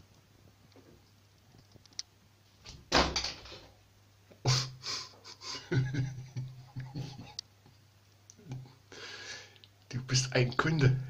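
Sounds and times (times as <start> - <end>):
shower frame bang: 2.6 - 3.8
shower frame rattling: 2.7 - 3.8.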